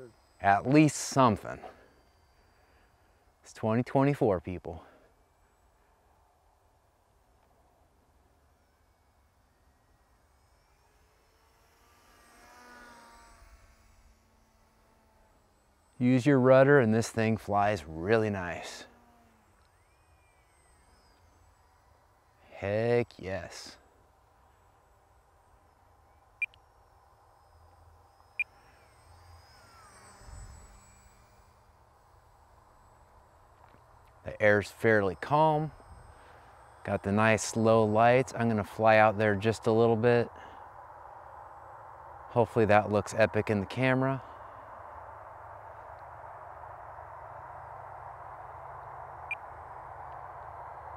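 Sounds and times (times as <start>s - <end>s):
distant electric propeller whine: 0.0s - 50.9s.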